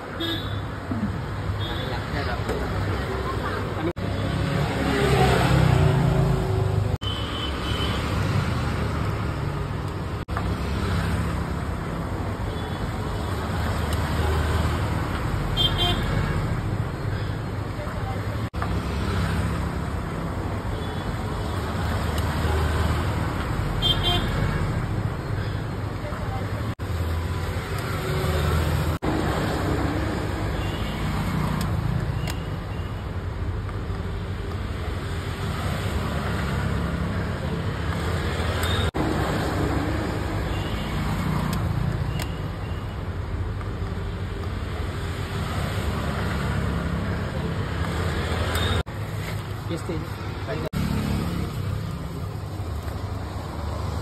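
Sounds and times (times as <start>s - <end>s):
road traffic: 0.0s - 54.0s.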